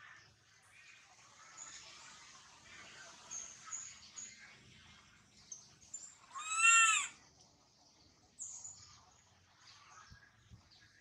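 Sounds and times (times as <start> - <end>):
baby macaque crying: 6.3 - 7.2.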